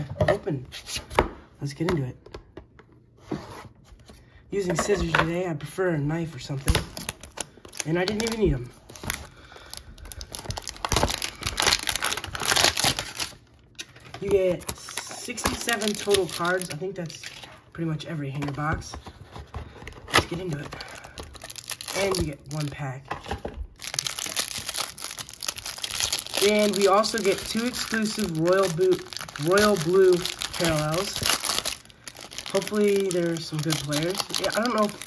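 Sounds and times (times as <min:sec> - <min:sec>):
plastic wrapping crinkling and tearing: 0:06.4 - 0:17.6, 0:19.3 - 0:23.0, 0:23.8 - 0:35.0.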